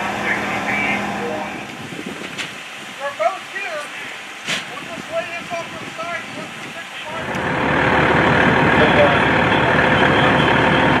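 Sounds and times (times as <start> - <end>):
diesel fire engine running: 0.0 - 11.0.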